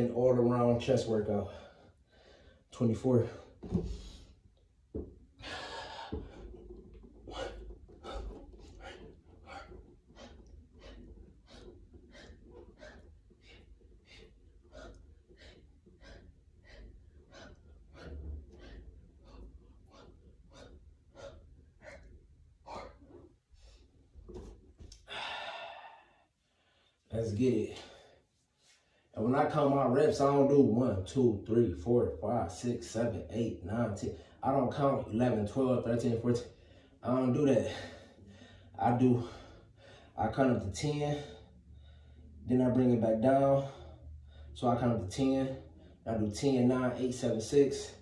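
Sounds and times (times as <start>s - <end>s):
man breathing hard: 3.4s - 27.1s, 37.7s - 40.2s.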